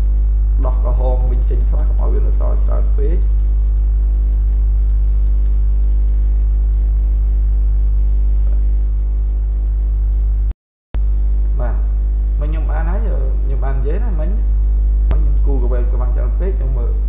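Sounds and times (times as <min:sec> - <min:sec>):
electrical mains hum: 0:00.0 - 0:17.0
person speaking: 0:00.6 - 0:05.6, 0:11.6 - 0:17.0.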